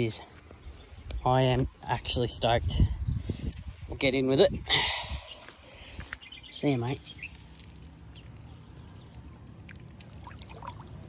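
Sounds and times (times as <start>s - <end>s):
bird chirps: 4.5s - 9.8s
water sloshing and trickling: 7.3s - 11.0s.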